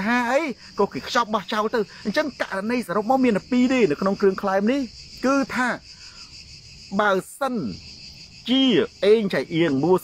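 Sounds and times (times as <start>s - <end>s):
man speaking: 0.0s - 5.9s, 6.9s - 7.8s, 8.4s - 10.0s
high-pitched insect chorus: 0.0s - 10.0s.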